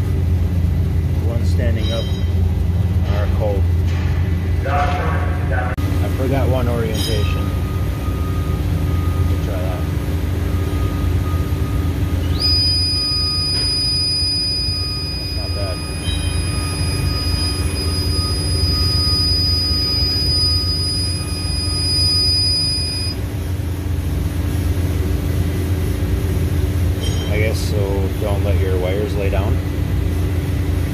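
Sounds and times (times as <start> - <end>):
low electrical hum: 0.0 - 30.9
high-pitched whine: 1.2 - 30.9.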